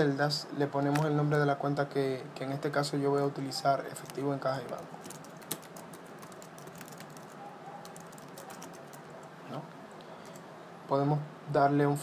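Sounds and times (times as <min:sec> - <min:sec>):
computer keyboard typing: 0:03.9 - 0:09.3.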